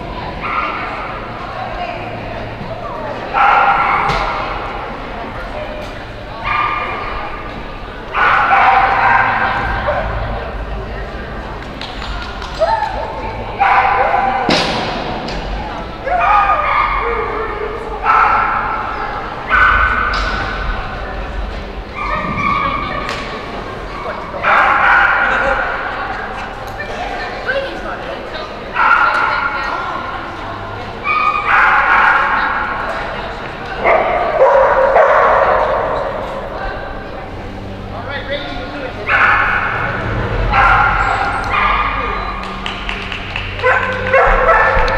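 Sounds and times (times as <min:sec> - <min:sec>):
dog barking in echoing hall: 0:00.1 - 0:02.3, 0:03.0 - 0:11.6, 0:12.8 - 0:26.9, 0:28.4 - 0:37.5, 0:38.8 - 0:44.9.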